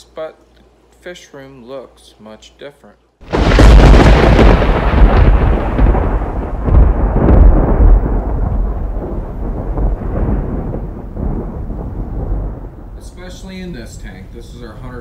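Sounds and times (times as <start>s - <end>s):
deep rumbling crash: 3.2s - 15.0s.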